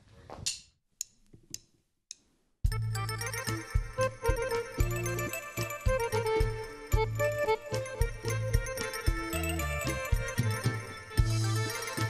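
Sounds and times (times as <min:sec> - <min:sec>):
folk band with accordion: 0:03.9 - 0:12.0.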